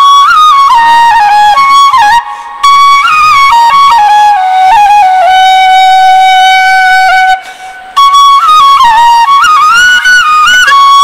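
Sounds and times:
bamboo flute melody: 0:00.0 - 0:11.0
player breathing: 0:07.4 - 0:07.9.

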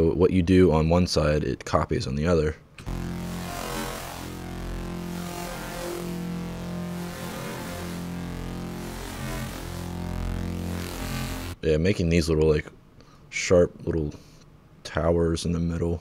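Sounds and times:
buzzy sustained synth note: 0:02.8 - 0:11.6.

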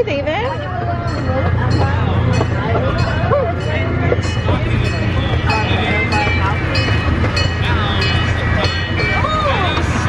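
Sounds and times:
ride-on train rumbling: 0:00.0 - 0:10.0
voices of riders: 0:00.0 - 0:10.0.

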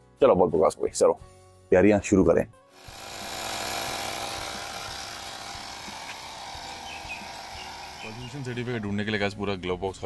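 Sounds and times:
electric air compressor running: 0:02.7 - 0:09.1.

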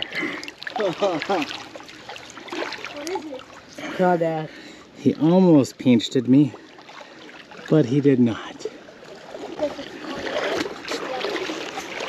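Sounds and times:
shallow creek water splashing: 0:00.0 - 0:12.0.

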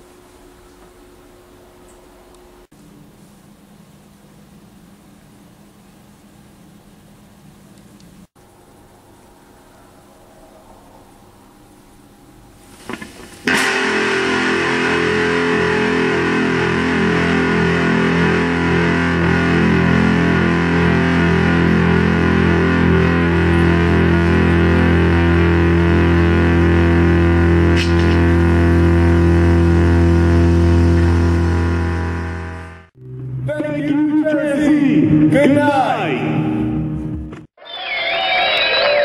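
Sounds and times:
distorted electric guitar chord: 0:13.4 - 0:33.5.

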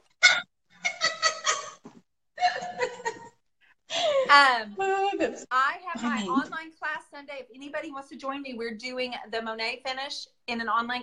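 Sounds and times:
woman laughing: 0:00.8 - 0:01.8, 0:02.4 - 0:04.4.

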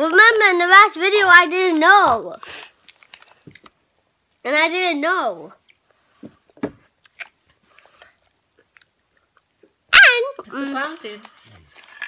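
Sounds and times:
child crunching cookies: 0:00.0 - 0:04.4, 0:06.8 - 0:09.8, 0:10.4 - 0:12.0.

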